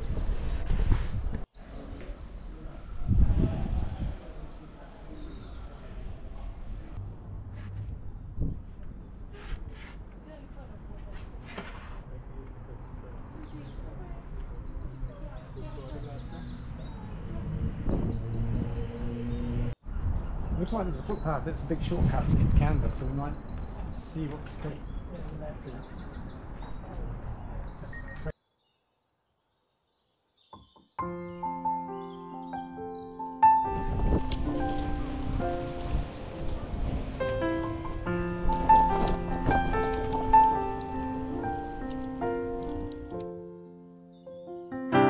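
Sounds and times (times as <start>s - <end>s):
distant people talking: 1.5s - 7.5s, 10.1s - 19.3s, 34.6s - 37.9s.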